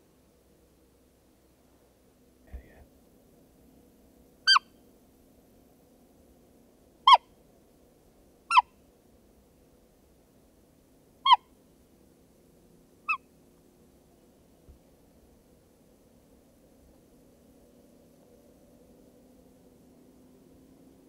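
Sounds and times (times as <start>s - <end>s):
squeaky deer call piping: 4.5s - 4.8s, 7.1s - 7.3s, 8.5s - 8.7s, 11.2s - 11.5s, 13.1s - 13.3s.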